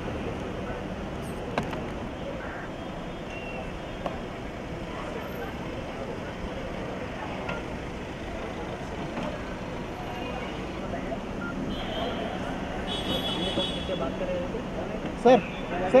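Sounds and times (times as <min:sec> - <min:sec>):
car engine rumbling: 0:00.0 - 0:15.4
faint indistinct voices: 0:00.0 - 0:16.0.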